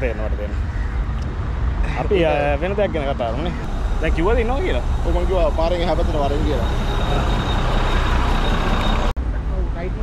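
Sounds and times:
voices: 0.0 - 1.2, 1.8 - 10.0
large vehicle engine running: 3.7 - 10.0.

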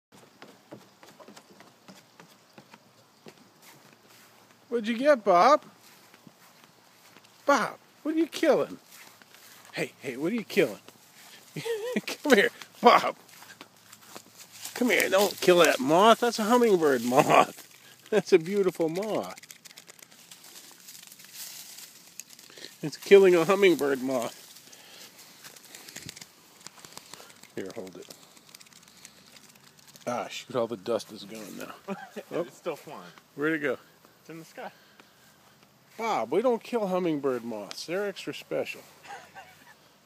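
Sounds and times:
footsteps on grass: 0.1 - 39.8
rustling of dry pine needles: 3.6 - 4.7, 5.6 - 39.9.

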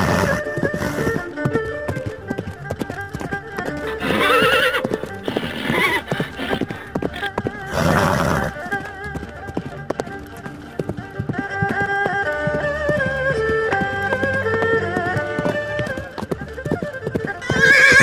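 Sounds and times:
horse breathy blow: 0.0 - 1.3
horse whinny: 0.0 - 1.4, 3.8 - 8.8, 17.4 - 18.0
background music sustained notes: 0.0 - 18.0
galloping horse hoofbeats: 0.0 - 18.0.

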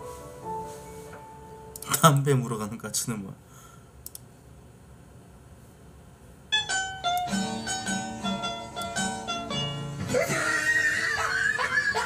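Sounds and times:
soft background music: 0.0 - 2.2, 6.6 - 11.1.

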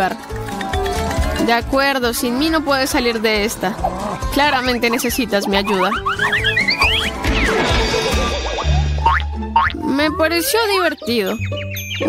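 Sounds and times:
background music: 0.0 - 12.0
cartoon boing: 6.0 - 9.9.

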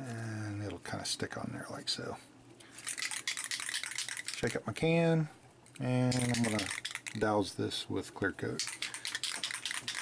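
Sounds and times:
aerosol can ball rattling: 2.6 - 4.6, 6.1 - 7.4, 8.5 - 10.0.

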